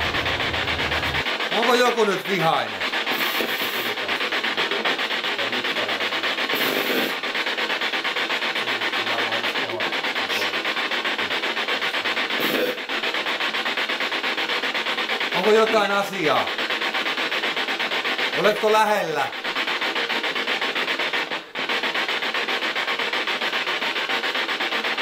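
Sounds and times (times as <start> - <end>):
fluttering rasping noise: 0.0 - 25.0.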